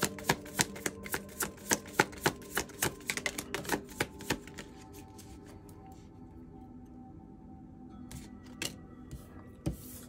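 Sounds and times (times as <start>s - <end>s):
cards shuffling and snapping: 0.0s - 4.7s.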